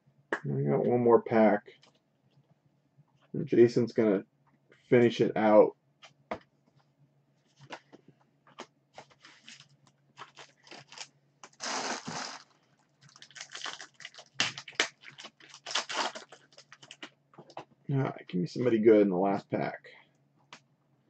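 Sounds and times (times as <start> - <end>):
wrapper crinkling: 9.0 - 17.1
wrapper tearing: 9.2 - 17.1.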